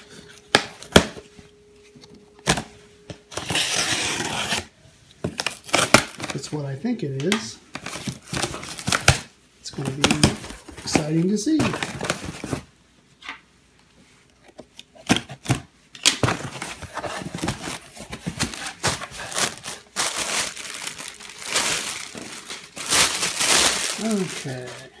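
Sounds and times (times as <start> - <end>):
plastic packing crinkling: 16.2 - 25.0.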